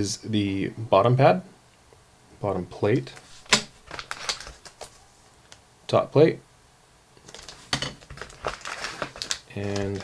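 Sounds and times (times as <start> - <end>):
plastic bag crinkling: 3.2 - 5.6, 7.2 - 10.0.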